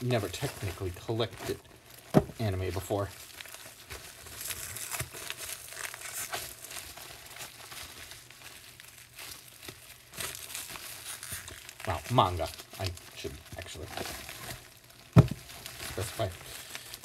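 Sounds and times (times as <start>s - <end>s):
packaging crinkling and rustling: 0.0s - 17.0s
sharp crackles: 0.0s - 17.0s.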